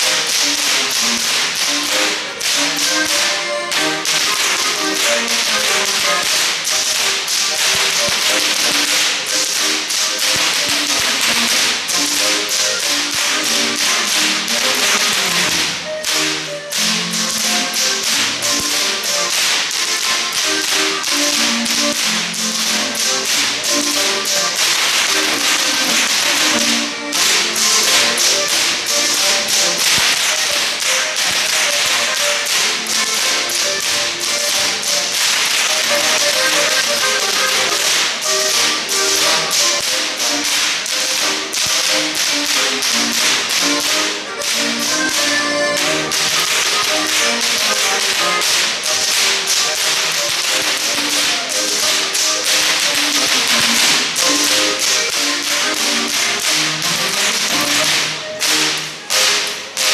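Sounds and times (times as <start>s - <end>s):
live band music: 0.0s - 59.9s
whips cracking in rhythm: 0.0s - 59.9s.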